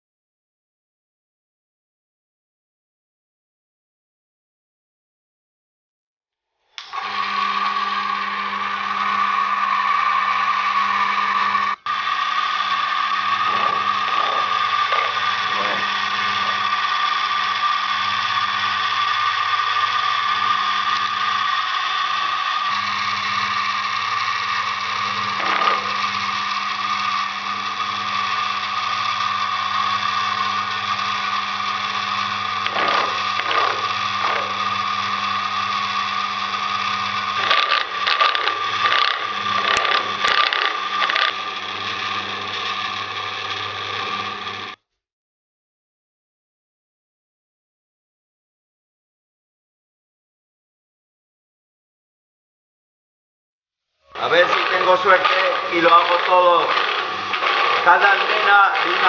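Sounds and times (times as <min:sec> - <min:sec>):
electric motor whining: 0:06.8 - 0:44.8, 0:54.1 - 0:59.0
milling cutter rasping on steel: 0:13.2 - 0:19.2, 0:19.9 - 0:44.2, 0:54.2 - 0:59.0.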